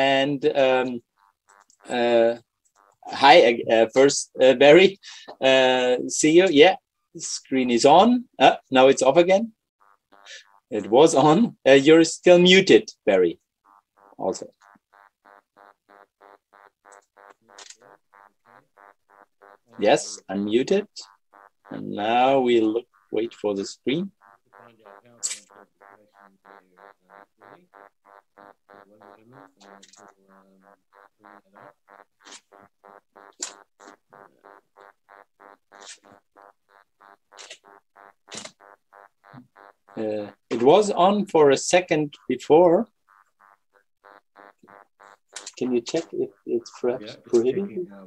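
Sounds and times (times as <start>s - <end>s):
choppy pulsing tone: 0.0s - 5.0s, 9.8s - 48.0s
faint electronic beeps: 0.0s - 48.0s.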